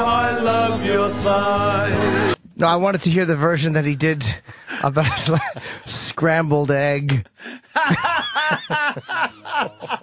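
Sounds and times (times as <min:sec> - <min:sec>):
man laughing: 0:04.6 - 0:05.9, 0:07.5 - 0:10.0.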